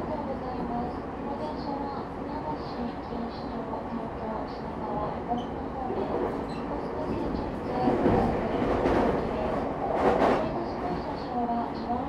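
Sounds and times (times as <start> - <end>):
train wheels rumbling on rails: 4.9 - 12.0.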